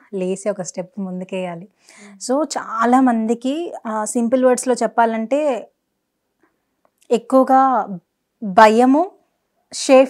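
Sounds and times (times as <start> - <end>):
woman speaking: 0.0 - 5.8, 7.0 - 10.0.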